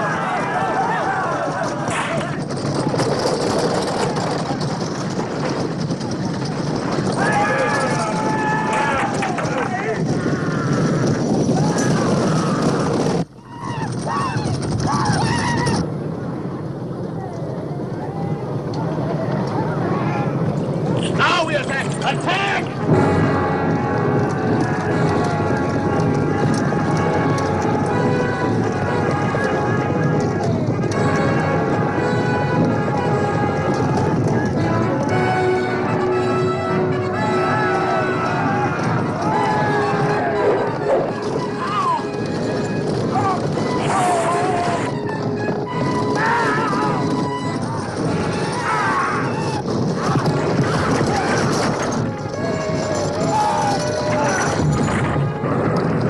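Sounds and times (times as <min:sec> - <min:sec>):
many voices shouting: 0:00.0 - 0:02.4, 0:07.1 - 0:15.9, 0:34.2 - 0:42.2, 0:43.1 - 0:45.1, 0:45.7 - 0:54.8
film battle din: 0:00.0 - 0:02.6
horses galloping: 0:00.0 - 0:56.0
orchestral film score: 0:21.1 - 0:56.0.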